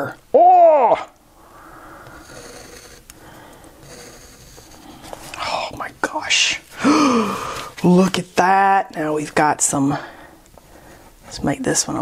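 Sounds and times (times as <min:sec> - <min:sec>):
faint breathing: 0:01.3 - 0:05.8, 0:06.7 - 0:07.8, 0:09.9 - 0:11.3.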